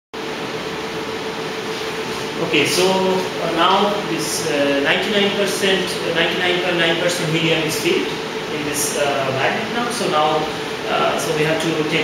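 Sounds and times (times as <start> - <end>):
machine hum: 0.2 - 12.0.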